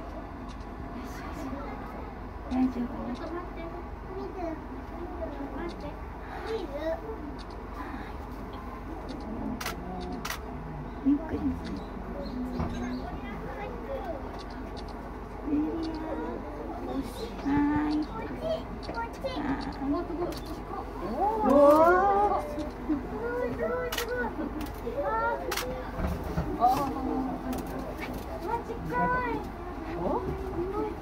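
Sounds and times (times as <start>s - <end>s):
faint distant voices: 0.0s - 31.0s
low outdoor hum: 0.0s - 31.0s.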